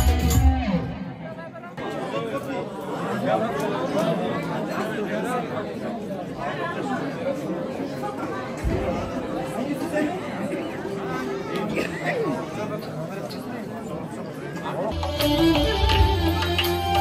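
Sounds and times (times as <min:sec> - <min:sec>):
crowd of men chattering: 0:00.8 - 0:17.0.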